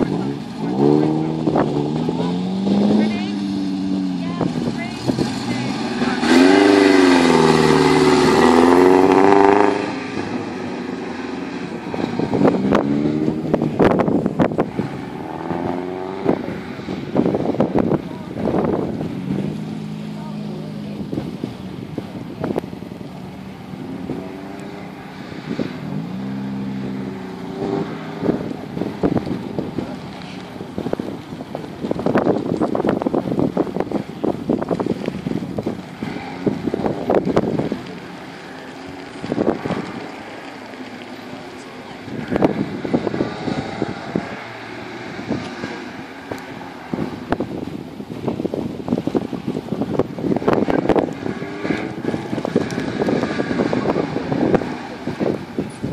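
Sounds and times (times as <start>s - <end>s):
sports car engine revving: 0.0s - 55.9s.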